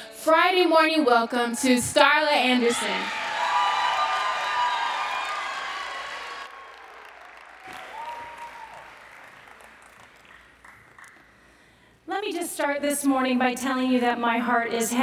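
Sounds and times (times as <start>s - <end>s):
audience applauding: 3.2s - 11.4s.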